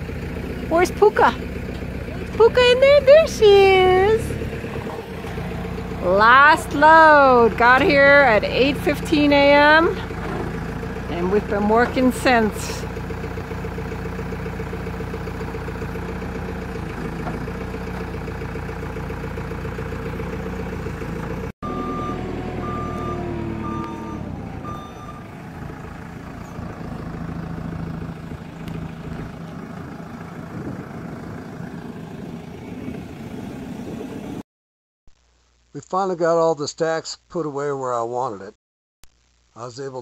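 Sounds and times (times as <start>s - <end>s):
diesel engine running: 0.0s - 34.4s
reversing alarm beeps: 21.6s - 25.3s.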